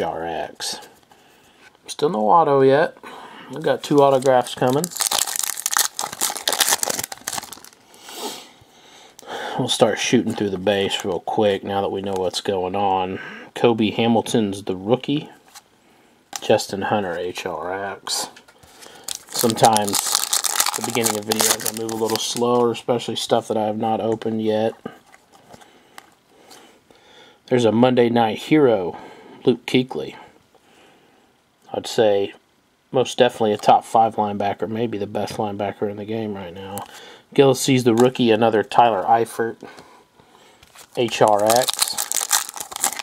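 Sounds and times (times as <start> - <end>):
foil wrapper tearing and crinkling: 3.8 - 7.8, 18.8 - 22.6, 40.7 - 43.0.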